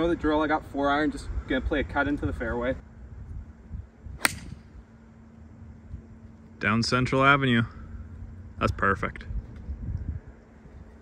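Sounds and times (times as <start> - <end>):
low background rumble: 0.0 - 11.0
golf club striking ball: 4.2 - 4.7.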